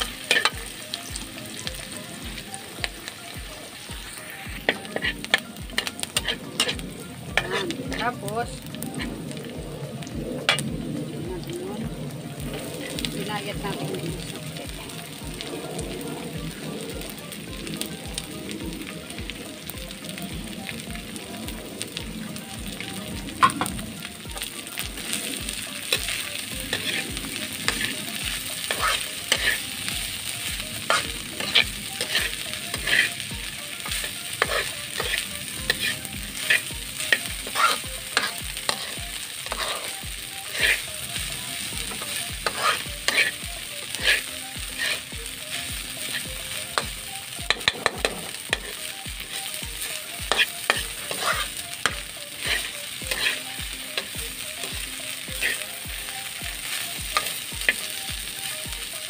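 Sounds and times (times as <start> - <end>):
metal tongs scraping a pan: 0.0 - 0.9, 4.1 - 8.2, 10.4 - 10.6, 25.8 - 30.0, 30.8 - 40.9, 41.9 - 45.1, 46.0 - 49.4, 50.0 - 54.2, 55.4 - 55.6, 56.7 - 57.9
food sizzling in a pan: 0.0 - 59.0.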